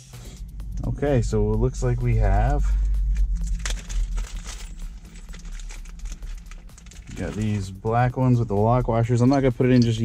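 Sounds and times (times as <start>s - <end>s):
low steady hum: 0.0s - 10.0s
rustling: 3.0s - 7.7s
bolts and washers clicking: 9.2s - 10.0s.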